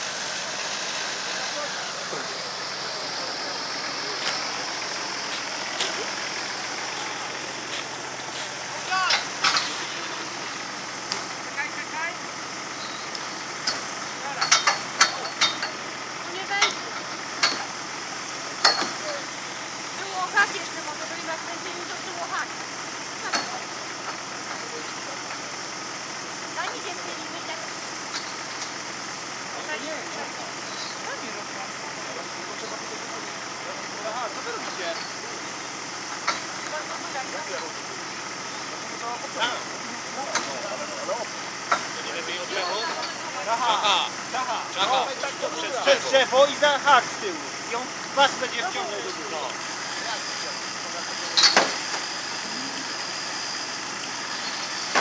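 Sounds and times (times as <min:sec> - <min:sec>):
indistinct voices: 0:00.0 - 0:25.8
engine running steadily: 0:00.0 - 0:55.0.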